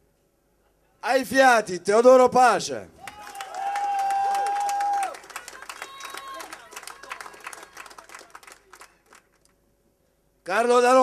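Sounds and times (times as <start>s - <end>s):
audience applause: 3.0s - 9.5s.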